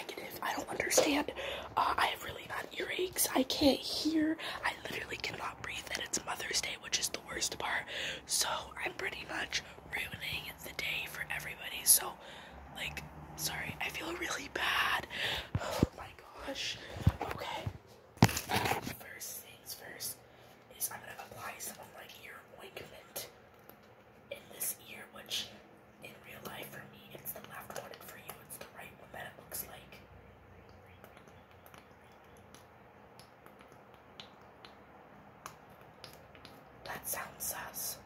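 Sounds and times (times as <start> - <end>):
person whispering: 0.0 - 17.8, 18.5 - 23.3, 24.3 - 30.0, 36.8 - 38.0.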